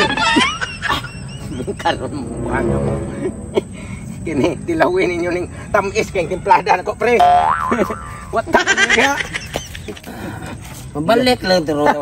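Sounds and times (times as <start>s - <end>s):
comic boing sound effect: 7.2s - 8.4s.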